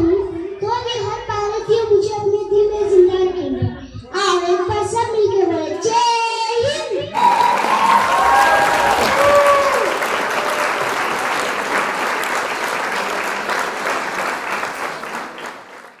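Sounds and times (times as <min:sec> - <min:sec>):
audience applauding: 0:07.2 - 0:16.0.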